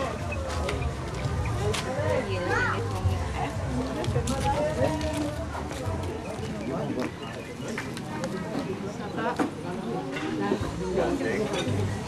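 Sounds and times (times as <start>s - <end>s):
overlapping chatter of guests: 0.0s - 12.0s.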